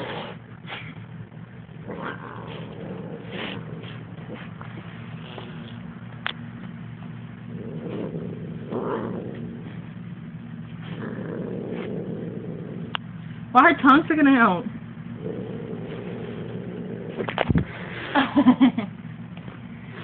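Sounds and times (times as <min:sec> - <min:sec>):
cat purring: 0:00.0 - 0:06.0, 0:07.4 - 0:13.2, 0:15.1 - 0:18.1.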